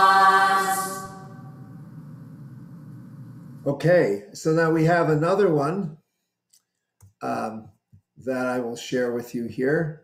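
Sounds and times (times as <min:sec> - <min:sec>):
choir chant chord: 0:00.0 - 0:01.7
faint low hum and hiss: 0:00.0 - 0:05.5.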